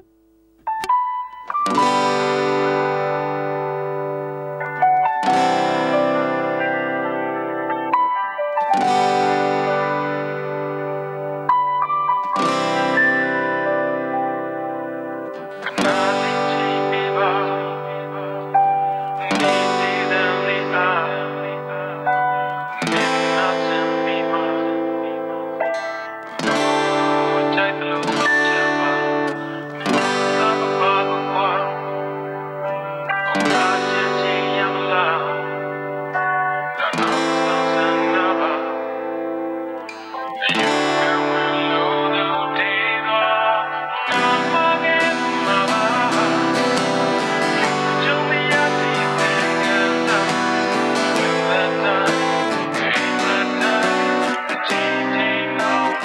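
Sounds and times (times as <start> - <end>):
acoustic guitar chords strummed: 0.0 - 56.0.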